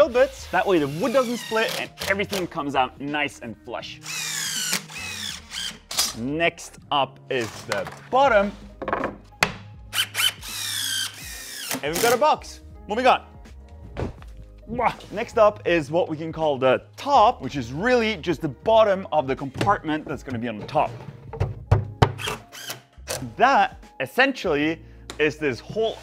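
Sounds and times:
cordless drill whining: 0.0s - 2.5s, 4.0s - 6.0s, 9.9s - 11.8s
wooden panel knocking on cabinet: 8.8s - 9.6s, 21.3s - 22.2s.

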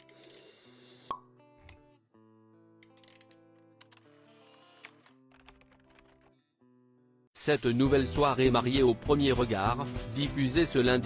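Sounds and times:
soft background music: 7.4s - 11.0s.

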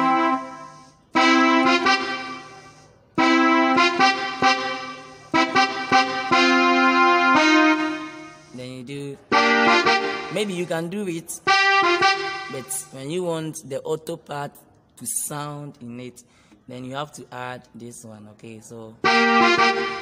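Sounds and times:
electronic keyboard chords: 0.0s - 13.2s, 19.0s - 20.0s.

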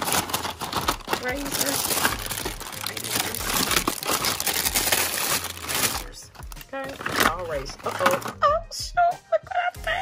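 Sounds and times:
plastic packages crinkling: 0.0s - 8.4s.

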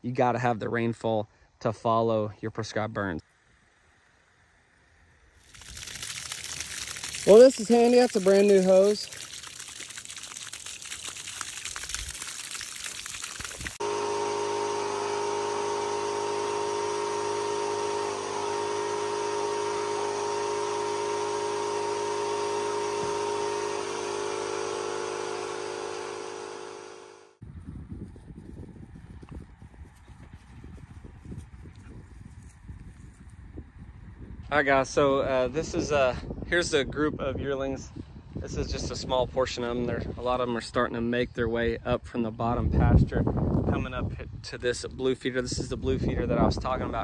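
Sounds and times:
hose spraying water on grass: 5.3s - 27.0s
wind noise on microphone: 27.4s - 47.0s.

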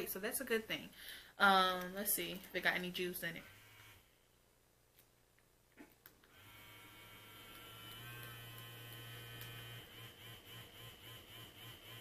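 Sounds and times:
vibration motor humming: 6.3s - 12.0s.

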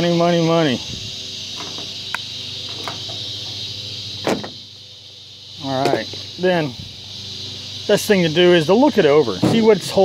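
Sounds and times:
high drone of insects: 0.0s - 10.0s.

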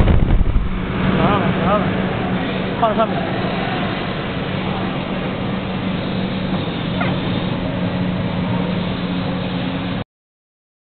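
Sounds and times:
low hum of blower motors: 0.0s - 10.0s
roller conveyor: 0.0s - 10.0s
rush of air from blowers: 0.0s - 10.0s.

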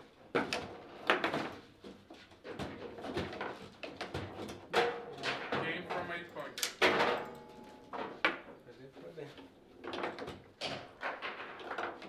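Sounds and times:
foosball ball and rods clicking: 9.8s - 12.0s.

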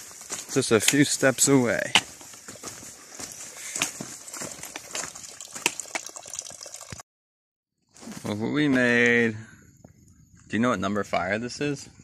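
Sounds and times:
footsteps on loose stones: 0.0s - 6.0s
water trickling into pool: 3.2s - 7.0s.

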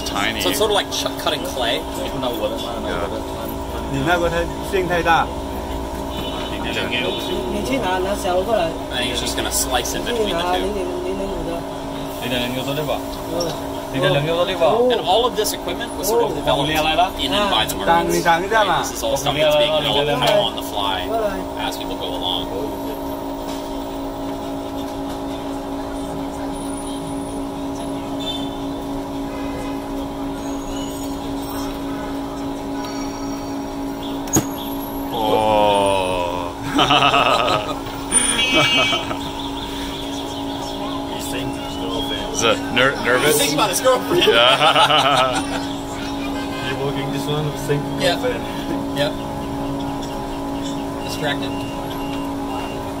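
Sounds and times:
vacuum pump machine hum: 0.0s - 53.0s.

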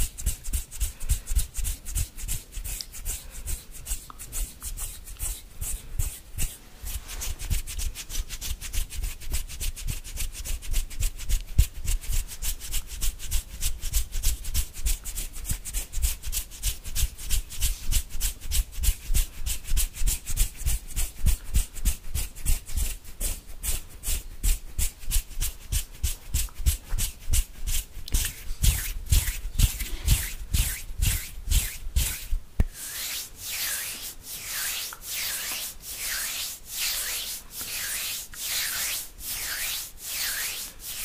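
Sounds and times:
fingertips rubbing on microphone: 26.6s - 41.0s.

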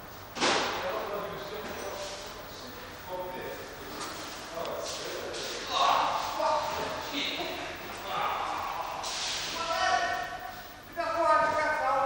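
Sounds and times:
men talking in echoing hall: 0.6s - 12.0s.

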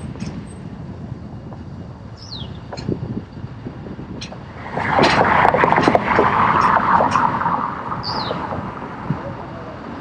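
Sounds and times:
car passing by: 4.4s - 10.0s.

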